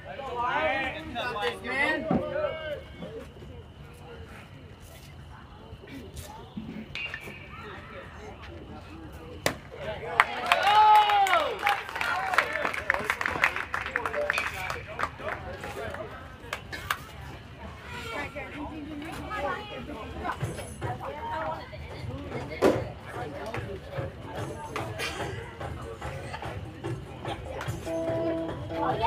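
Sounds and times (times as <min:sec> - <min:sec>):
spectators yelling and cheering: 0:10.2 - 0:13.1.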